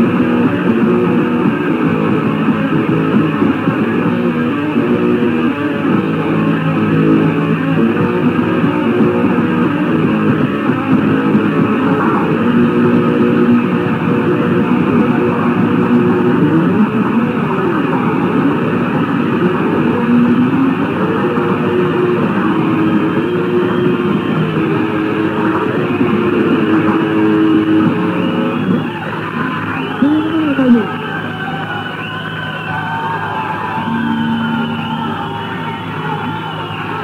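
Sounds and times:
bass guitar: 0.0s - 32.4s, 33.2s - 36.8s
distorted electric guitar: 0.0s - 37.0s.

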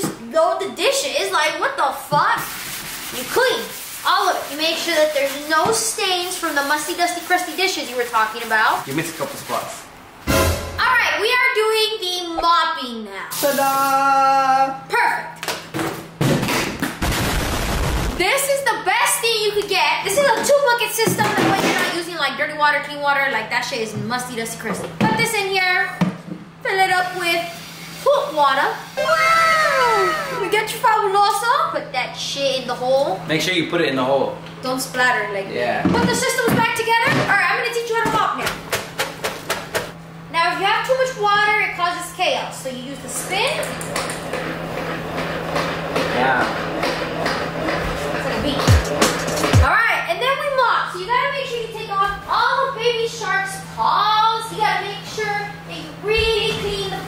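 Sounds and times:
spin mop whirring and rattling: 0.6s - 9.8s, 42.2s - 49.7s
explosion blast: 17.0s - 18.2s.

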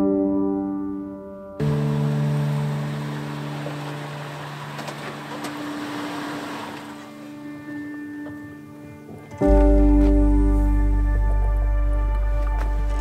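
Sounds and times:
car engine running: 1.6s - 7.3s
tyres rolling on pavement: 1.6s - 8.4s.

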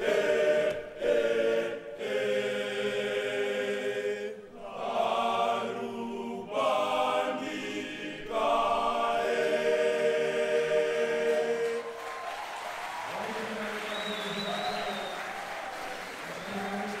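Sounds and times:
boys' choir singing: 0.0s - 12.1s
applause: 11.3s - 17.0s
voices: 13.1s - 17.0s.

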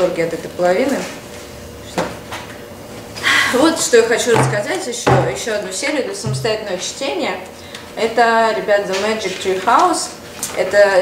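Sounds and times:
book knocking on wooden table: 4.3s - 5.4s, 6.3s - 6.6s.

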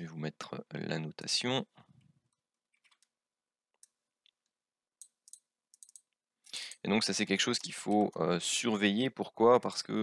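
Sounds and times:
computer mouse and keyboard clicks: 5.0s - 6.2s.

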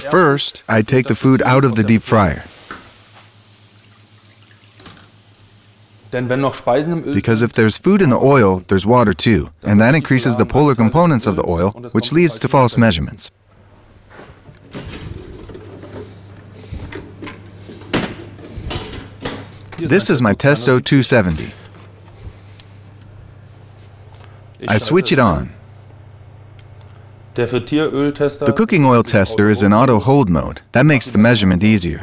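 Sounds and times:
steady low hum: 0.0s - 32.0s
hot oil dripping: 2.6s - 6.0s.

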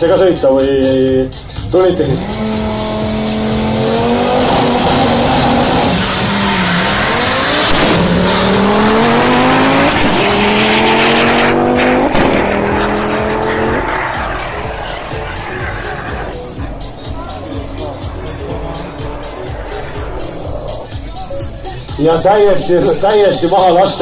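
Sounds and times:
car engines accelerating: 0.0s - 24.0s.

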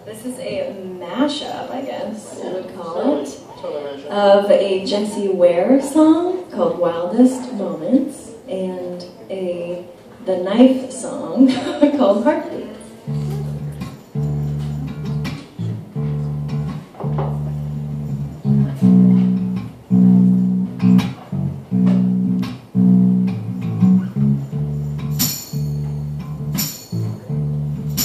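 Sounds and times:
electric guitar low held notes: 13.0s - 28.0s
sharp percussive taps: 25.0s - 27.1s.

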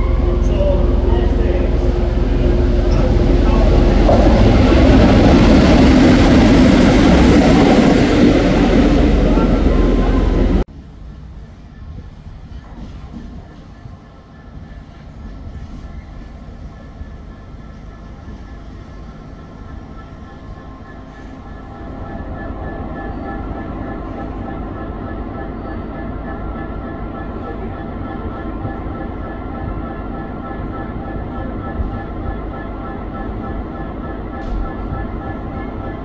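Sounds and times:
diesel locomotive engine running: 0.0s - 36.0s.

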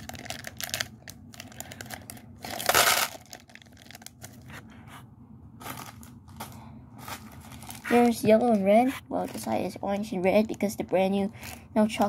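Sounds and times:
plastic packet crinkling: 0.0s - 4.5s, 5.6s - 8.6s.

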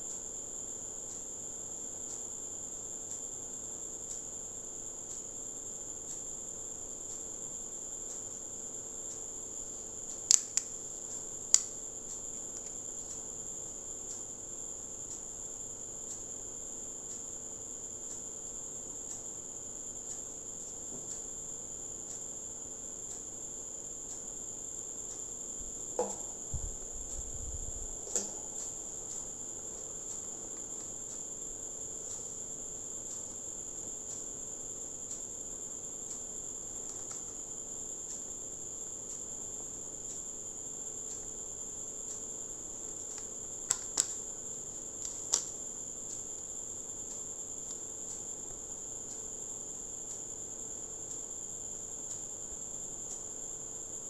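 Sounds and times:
faint ticks: 1.0s - 1.4s, 2.0s - 16.4s, 17.0s - 54.0s
objects set down on desk: 26.0s - 26.4s.

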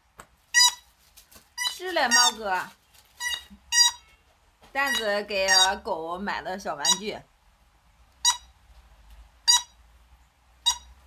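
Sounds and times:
dog toy high-pitched toots: 4.9s - 5.8s, 8.2s - 8.5s, 9.5s - 9.8s, 10.6s - 10.9s.

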